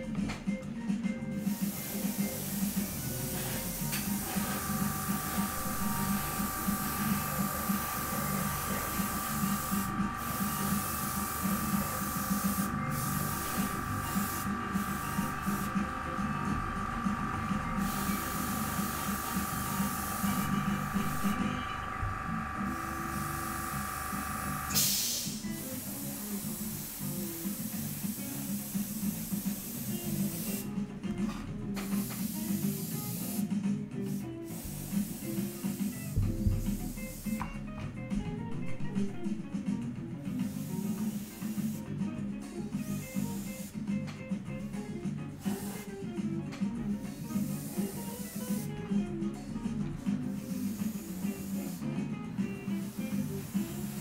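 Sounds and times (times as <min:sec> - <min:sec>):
background music: 0:00.0 - 0:54.0
airbrush hissing: 0:01.3 - 0:30.7, 0:31.8 - 0:37.6, 0:40.4 - 0:42.0, 0:42.8 - 0:43.9, 0:45.4 - 0:46.0, 0:46.9 - 0:48.8, 0:50.2 - 0:54.0.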